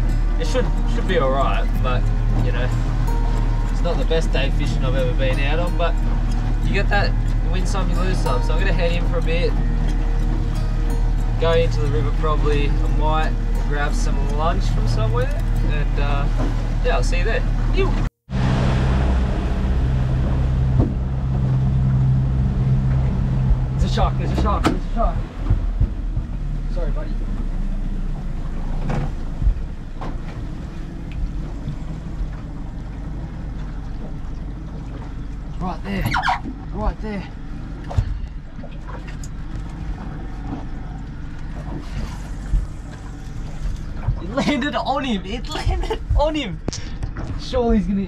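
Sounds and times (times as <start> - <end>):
boat engine humming: 0.0 - 48.0
rushing water: 0.0 - 48.0
rushing wind: 16.4 - 33.5.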